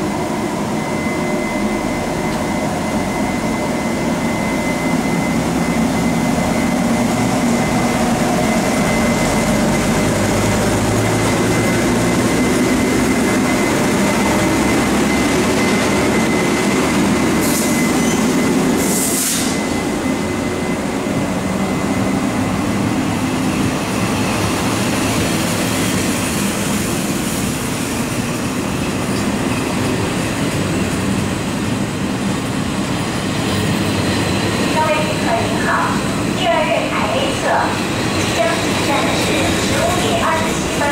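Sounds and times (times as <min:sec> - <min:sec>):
thin steady whine: 0:00.0 - 0:24.4, 0:33.6 - 0:40.9
train wheels rumbling on rail: 0:00.0 - 0:40.9.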